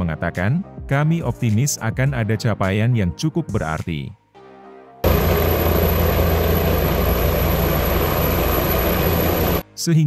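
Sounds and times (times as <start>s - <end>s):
helicopter rotor rumble: 5.0s - 9.6s
high-pitched turbine whine: 5.0s - 9.6s.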